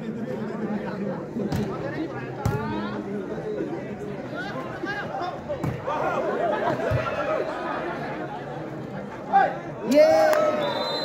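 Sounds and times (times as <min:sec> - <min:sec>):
crowd chattering and calling out: 0:00.0 - 0:11.0
loud shout: 0:09.3 - 0:11.0.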